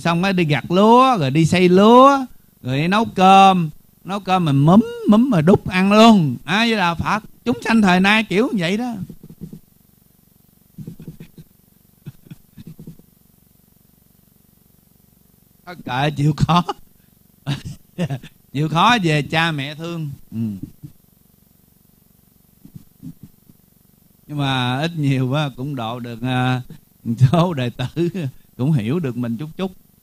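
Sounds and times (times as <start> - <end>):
person chuckling: 4.8 - 5.3, 10.8 - 13.0, 17.5 - 18.4, 20.3 - 20.9.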